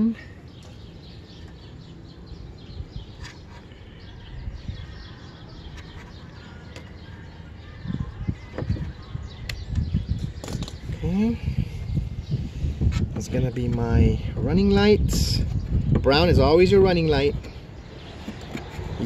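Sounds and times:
small birds chirping: 0:00.0 - 0:19.0
low rumbling on microphone: 0:00.2 - 0:19.0.

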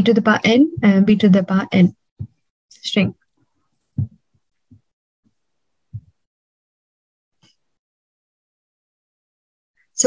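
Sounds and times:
woman speaking: 0:00.0 - 0:02.0, 0:02.7 - 0:03.2
soft low thumps: 0:00.3 - 0:02.5, 0:03.9 - 0:04.9, 0:05.9 - 0:06.2.

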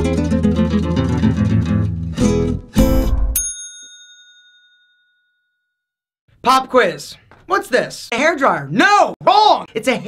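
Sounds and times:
bright bell ding: 0:02.9 - 0:05.7.

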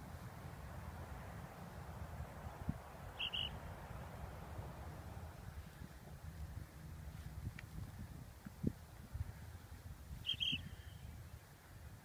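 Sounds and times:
wind rumbling on microphone: 0:00.0 - 0:12.0
high-pitched chirps: 0:03.2 - 0:03.6, 0:10.2 - 0:11.0.

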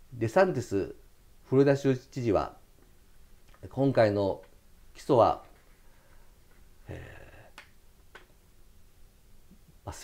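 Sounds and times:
man's hesitation sound: 0:06.8 - 0:07.7.

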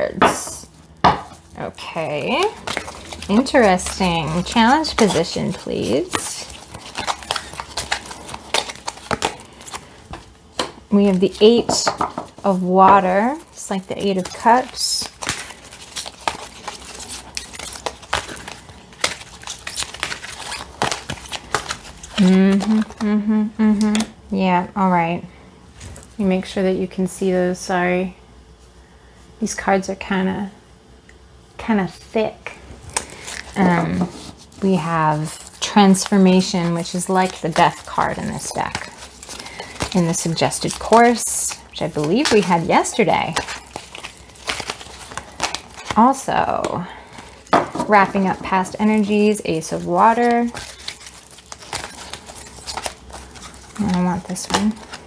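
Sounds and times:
cards clicking and rustling: 0:02.0 - 0:12.5, 0:13.2 - 0:23.1, 0:32.9 - 0:55.0.

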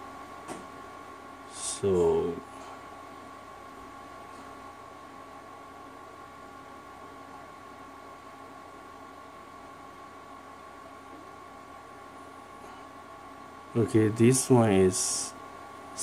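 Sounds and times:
low hiss and hum: 0:00.0 - 0:16.0.

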